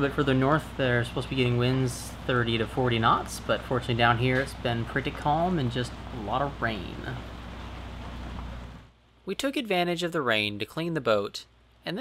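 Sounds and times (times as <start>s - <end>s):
low hum: 0.0s - 9.2s.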